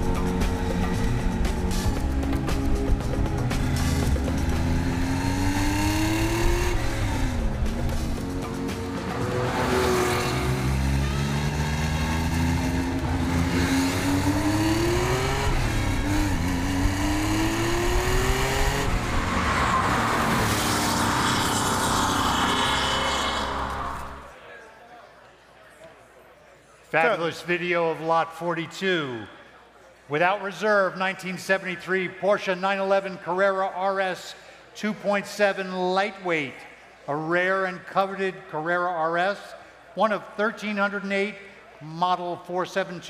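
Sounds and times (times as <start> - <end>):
background music: 0.0 - 24.4
car engine accelerating: 0.0 - 24.4.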